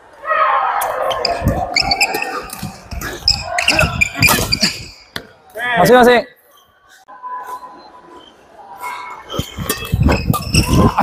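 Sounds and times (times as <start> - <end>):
sneakers squeaking: 0.8 - 5.4, 7.4 - 11.0.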